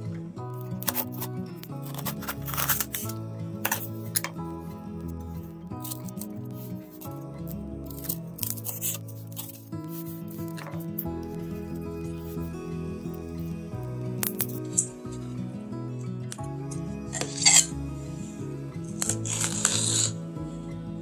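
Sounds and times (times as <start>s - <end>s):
gentle background music: 0.0s - 21.0s.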